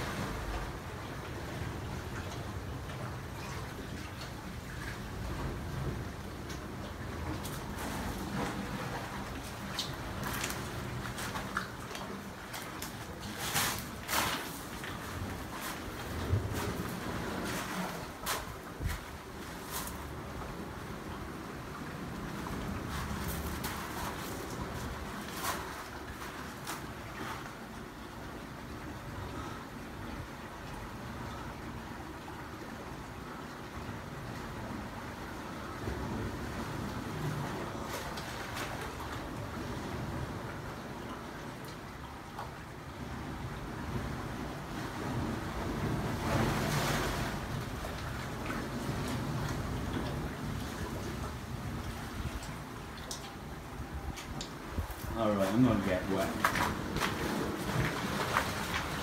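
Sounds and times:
sea water lapping through rock gully: 0.0s - 59.0s
wind rumbling on microphone: 13.1s - 26.0s, 42.8s - 59.0s.

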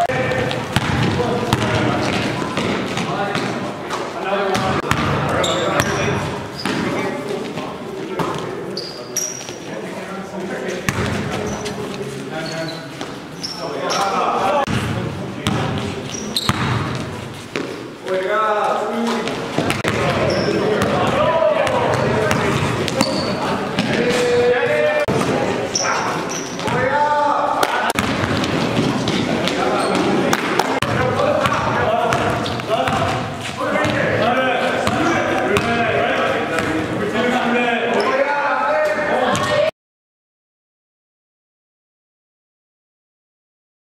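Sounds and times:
sneakers squeaking: 0.0s - 9.7s, 10.6s - 18.0s, 19.0s - 24.4s, 25.1s - 27.0s, 28.0s - 37.0s
basketball bouncing on gym floor: 0.2s - 3.6s, 4.6s - 6.9s, 10.9s - 11.2s, 14.7s - 17.7s, 19.2s - 24.0s, 28.0s - 34.0s, 34.8s - 35.8s
basketball bouncing on floor: 0.4s - 3.6s, 4.6s - 5.2s, 16.4s - 17.7s, 28.0s - 29.6s, 34.8s - 35.8s.

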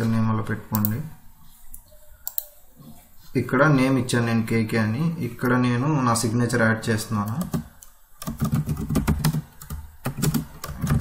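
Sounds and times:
typing on computer keyboard: 7.4s - 11.0s.

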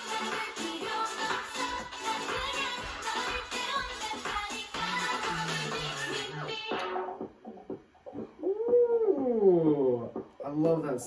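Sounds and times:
muffled music with beat ticks: 0.0s - 11.0s.

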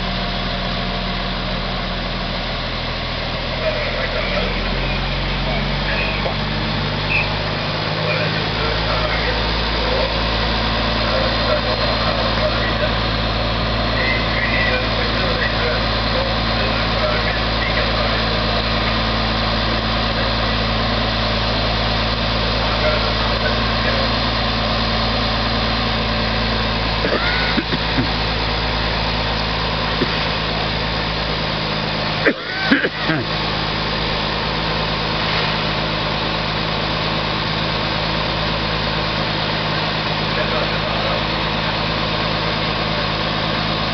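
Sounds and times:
fire engine idling: 0.0s - 43.9s.

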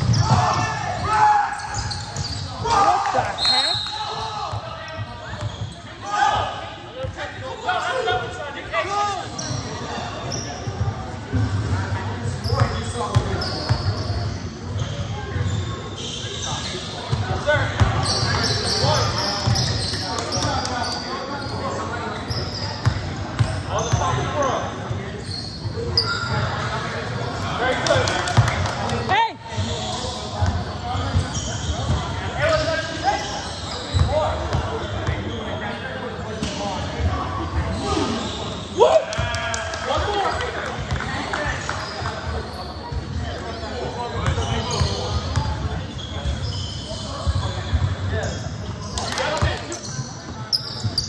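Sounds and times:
players' voices: 0.0s - 51.0s.

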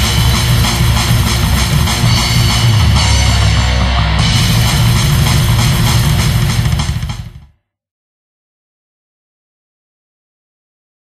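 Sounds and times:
instrumental heavy metal: 0.0s - 7.6s.

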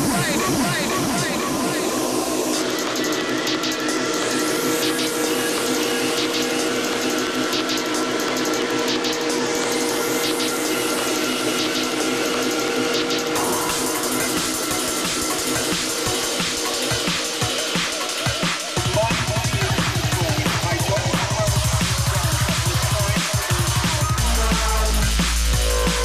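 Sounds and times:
ticking hi-hats: 0.0s - 26.0s.

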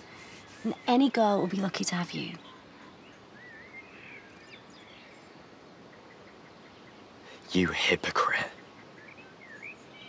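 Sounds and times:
bird chirping: 0.0s - 10.0s
faint outdoor ambience: 0.0s - 10.0s.

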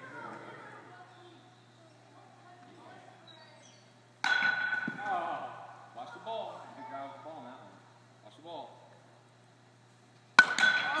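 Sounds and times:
bat hitting ball: 4.2s - 5.2s, 10.4s - 11.0s.

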